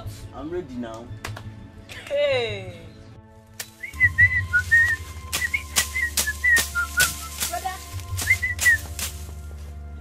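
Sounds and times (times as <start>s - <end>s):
background music: 0.0s - 10.0s
person whistling: 3.8s - 7.3s, 8.2s - 8.9s.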